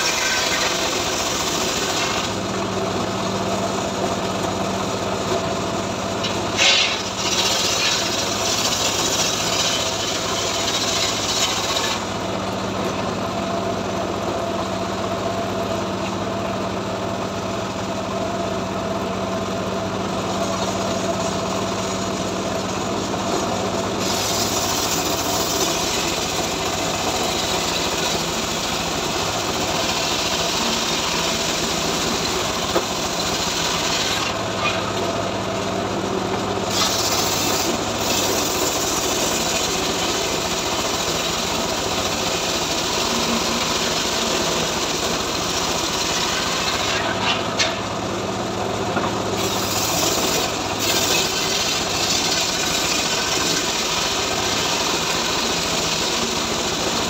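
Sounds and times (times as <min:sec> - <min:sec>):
circular saw cutting log: 0:00.0 - 0:13.1, 0:20.2 - 0:57.0.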